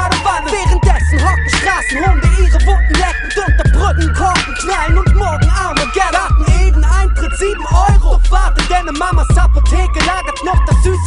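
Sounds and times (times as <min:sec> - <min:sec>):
deep bass: 0:00.0 - 0:11.0
rapping over a beat: 0:00.0 - 0:11.0.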